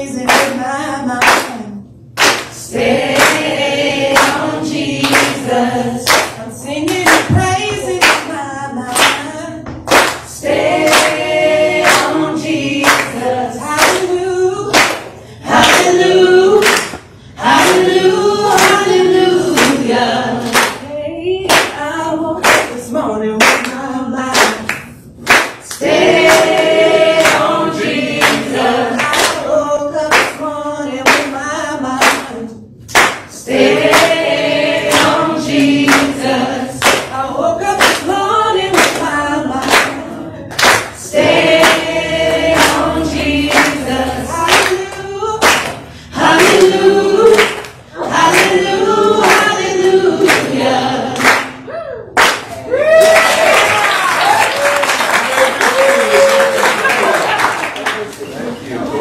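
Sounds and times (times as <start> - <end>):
group of people singing: 0.0 - 51.7
hand claps: 0.2 - 0.6, 1.2 - 1.6, 2.2 - 3.5, 4.1 - 4.4, 5.0 - 14.1, 14.7 - 16.0, 16.6 - 17.9, 18.5 - 18.9, 19.6 - 19.8, 20.4 - 20.8, 21.5 - 21.8, 22.4 - 22.8, 23.4 - 29.4, 30.1 - 31.3, 32.0 - 32.3, 32.9 - 34.2, 34.8 - 36.2, 36.8 - 37.1, 38.8 - 49.6, 51.2 - 51.6, 52.2 - 58.3.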